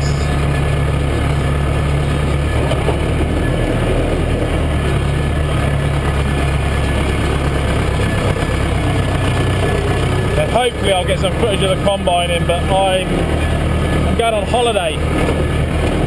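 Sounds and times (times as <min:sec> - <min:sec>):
tractor diesel engine running: 0:00.0 - 0:16.0.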